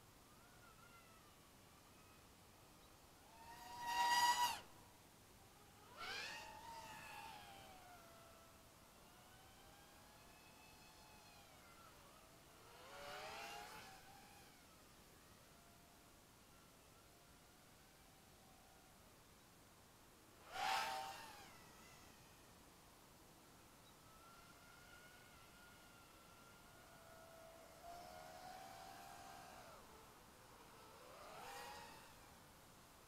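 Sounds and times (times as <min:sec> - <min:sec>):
quadcopter motors whining: 0:00.3 - 0:04.7, 0:05.4 - 0:18.9, 0:20.4 - 0:22.6, 0:23.5 - 0:32.6.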